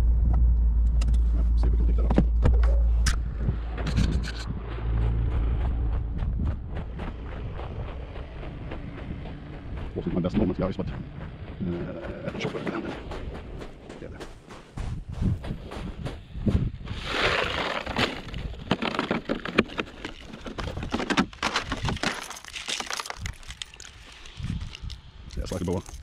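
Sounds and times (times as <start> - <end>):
gravel crunching and clattering: 0.0 - 26.0.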